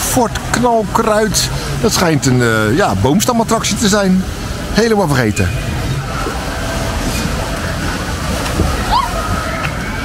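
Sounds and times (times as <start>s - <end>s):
faint voices: 0.0s - 10.0s
water rushing in channel: 0.0s - 10.0s.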